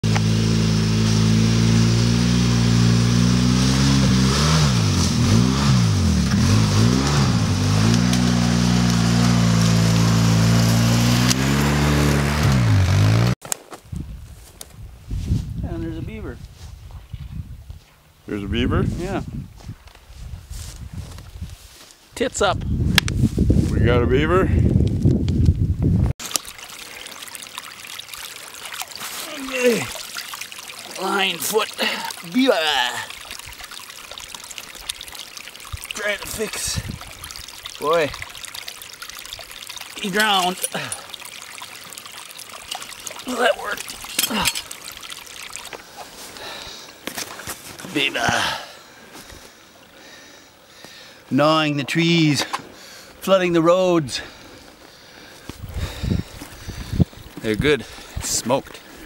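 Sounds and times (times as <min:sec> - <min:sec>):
water trickling and splashing: 0:00.0 - 0:13.0, 0:26.2 - 0:51.1, 0:54.1 - 0:59.0
quad bike engine revving: 0:00.0 - 0:13.4
water dripping: 0:06.1 - 0:11.7, 0:26.2 - 0:48.6, 0:55.4 - 0:58.9.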